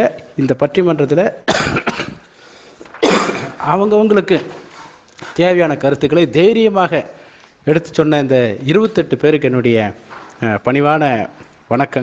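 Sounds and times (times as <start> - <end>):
short cough: 1.5 - 2.3, 2.9 - 3.6
person talking: 3.4 - 12.0.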